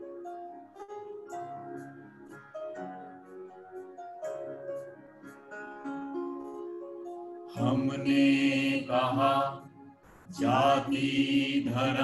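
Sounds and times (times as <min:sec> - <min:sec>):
man and woman singing together: 0:07.6 - 0:09.7, 0:10.4 - 0:12.0.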